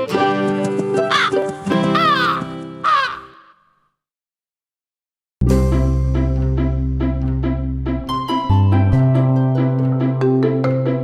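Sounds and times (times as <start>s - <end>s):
crow cawing: 1.1s - 3.9s.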